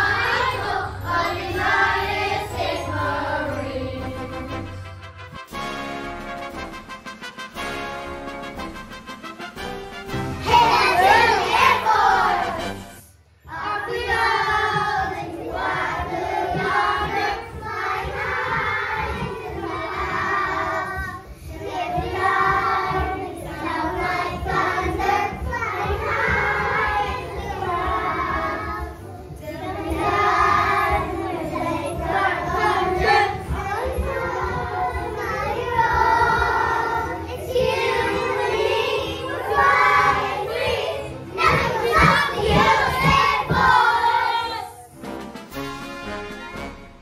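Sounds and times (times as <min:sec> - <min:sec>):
children singing: 0:00.0 - 0:04.8, 0:10.4 - 0:44.9
backing track: 0:00.0 - 0:44.2, 0:44.9 - 0:47.0
recorded backing track: 0:01.4 - 0:18.8, 0:44.8 - 0:47.0.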